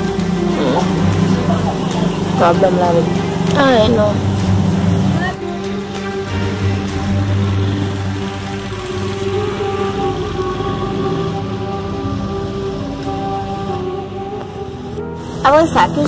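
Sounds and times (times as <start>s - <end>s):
background music sustained notes: 0.0s - 16.0s
small motorcycle engine running: 0.0s - 16.0s.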